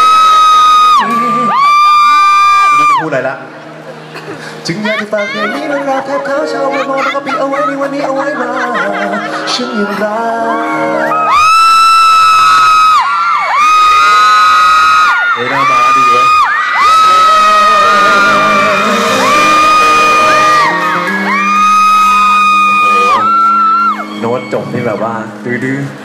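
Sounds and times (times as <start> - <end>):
live pop song: 0.0 - 3.0, 4.0 - 14.4, 15.0 - 26.0
fans screaming: 0.0 - 3.3, 4.4 - 25.9
man singing: 4.6 - 11.3, 16.9 - 23.6.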